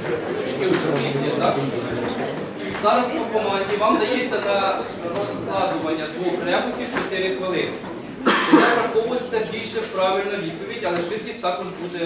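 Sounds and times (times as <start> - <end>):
audience talking indistinctly: 0.0 - 12.0
loud cough: 8.2 - 9.0.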